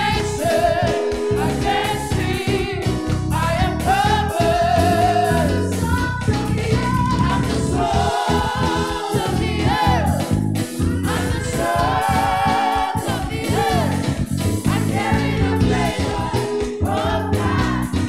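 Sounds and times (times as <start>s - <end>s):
group singing gospel song: 0.0s - 18.0s
keyboard accompaniment: 0.0s - 18.0s.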